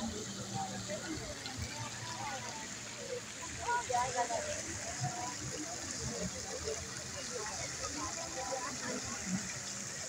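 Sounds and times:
people talking: 0.0s - 10.0s
water falling from fountain: 0.0s - 10.0s.

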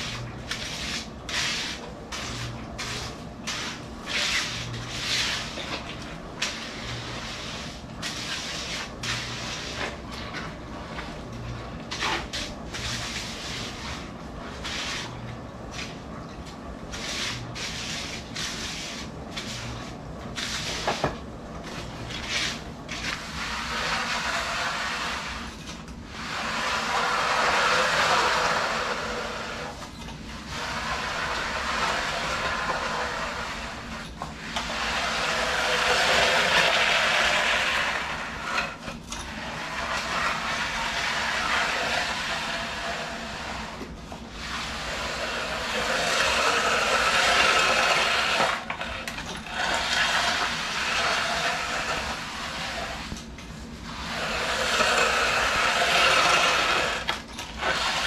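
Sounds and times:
float scraping wet concrete: 0.0s - 58.0s.

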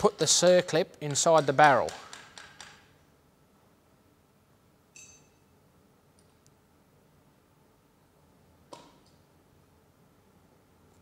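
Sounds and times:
metal ring: 4.9s - 5.5s.

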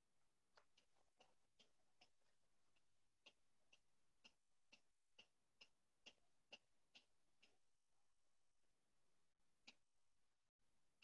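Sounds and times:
faint even ticking: 0.5s - 7.7s.

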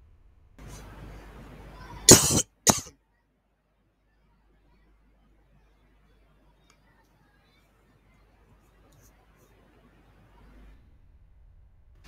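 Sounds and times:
person coughing: 2.1s - 2.9s.

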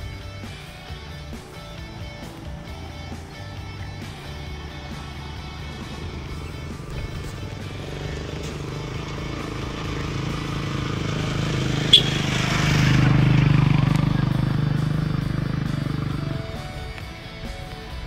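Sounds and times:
background music: 0.0s - 18.0s
motorcycle engine passing: 0.0s - 18.0s.

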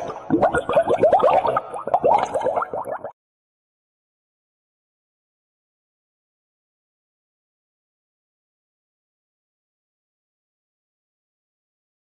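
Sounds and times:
cartoon bubble plops and boings: 0.0s - 3.2s.

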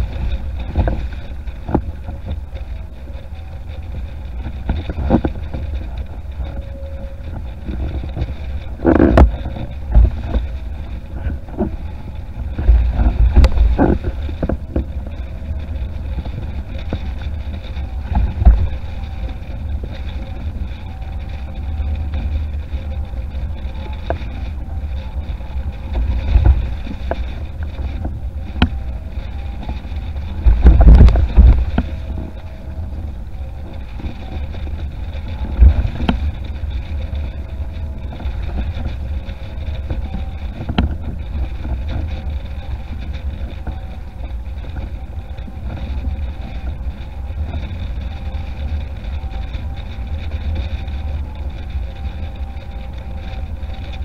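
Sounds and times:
board hull splashing through water: 0.0s - 54.0s
wind buffeting microphone: 0.0s - 54.0s.

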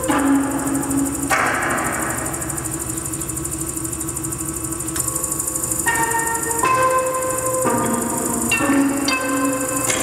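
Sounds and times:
fast rattle of ticks: 0.0s - 10.0s
steady low hum: 0.0s - 10.0s.

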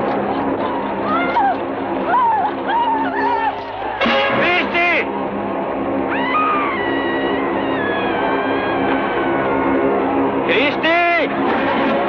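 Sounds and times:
background music: 0.0s - 12.0s
long wailing cry: 0.6s - 3.6s, 6.0s - 9.9s.

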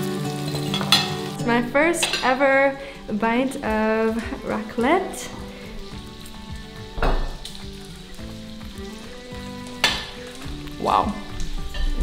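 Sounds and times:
bacon sizzling on grill: 0.0s - 12.0s
knock: 7.0s - 7.4s.

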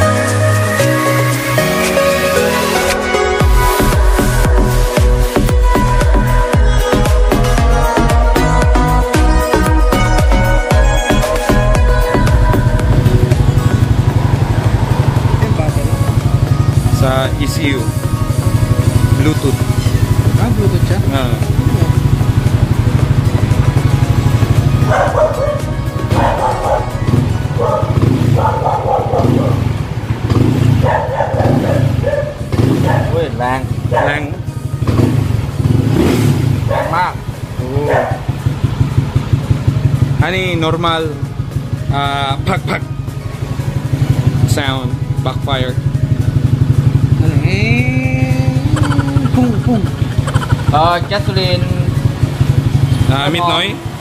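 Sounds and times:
scooter engine running: 2.6s - 54.0s.

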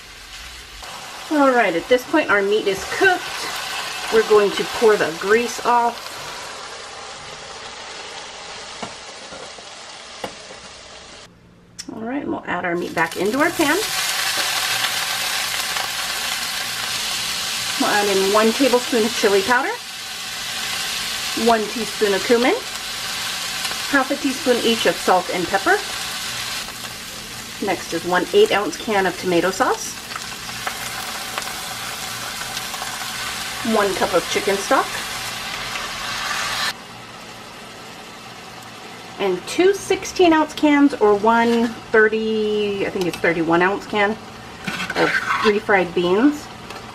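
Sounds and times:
meat sizzling in a frying pan: 0.0s - 11.3s, 12.9s - 39.2s.

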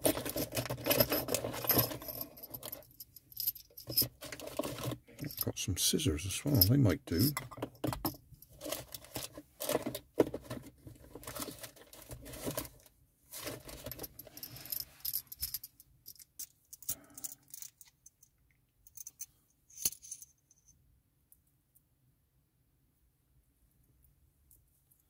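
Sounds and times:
plastic parts clicking and clattering: 0.0s - 2.8s, 3.8s - 5.3s, 7.2s - 14.8s.

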